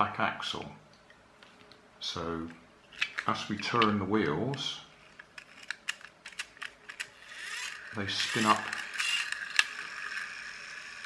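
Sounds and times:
toy car flywheel whirring: 5.4 - 11.0.

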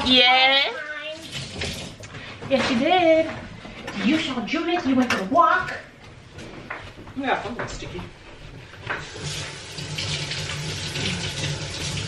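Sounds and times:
tap water running into sink: 1.1 - 2.2, 8.8 - 12.0.

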